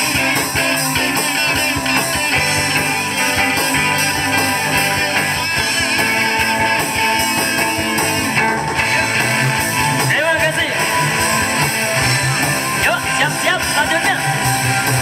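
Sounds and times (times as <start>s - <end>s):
lead guitar bending in pitch: 0.0s - 15.0s
live rock band playing: 0.0s - 15.0s.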